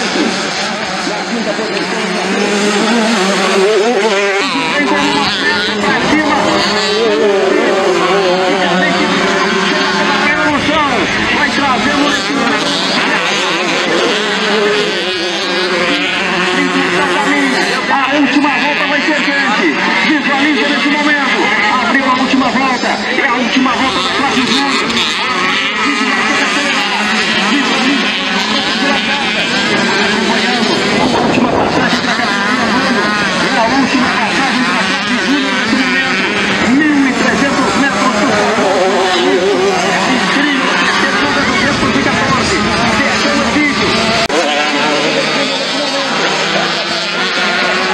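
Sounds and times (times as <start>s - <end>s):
dirt bike engines revving: 0.0s - 47.9s.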